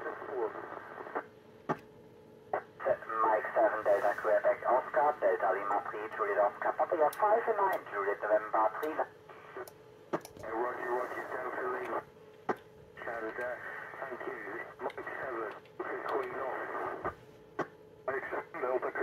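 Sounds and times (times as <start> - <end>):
tinny radio voices: 0.0 - 1.2, 2.5 - 9.7, 10.4 - 12.1, 13.0 - 19.0
sharp radio clicks: 5.6 - 10.8, 11.4 - 19.0.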